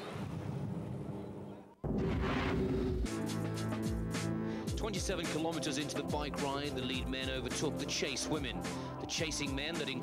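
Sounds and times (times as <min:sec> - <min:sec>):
boom and rush transition effect: 0:01.8 - 0:03.4.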